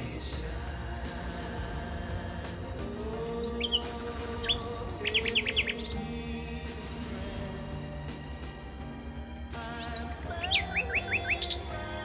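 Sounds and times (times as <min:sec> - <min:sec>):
soft background music: 0:00.0 - 0:12.0
songbird chirping: 0:02.7 - 0:08.8, 0:09.5 - 0:12.0.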